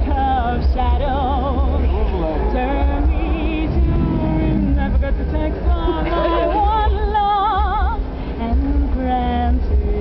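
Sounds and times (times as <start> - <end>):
woman singing with vibrato: 0.0 - 10.0
band with heavy bass: 2.9 - 7.0.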